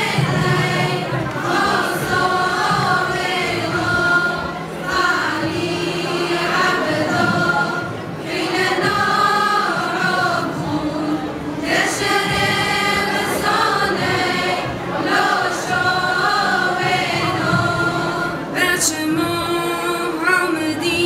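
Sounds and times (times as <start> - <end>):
female choir singing held notes: 0.0 - 21.0.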